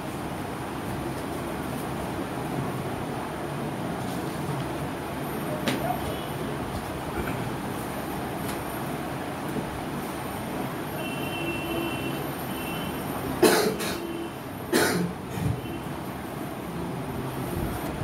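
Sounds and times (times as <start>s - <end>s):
room background noise: 0.0s - 18.0s
person coughing: 13.4s - 14.1s, 14.7s - 15.2s.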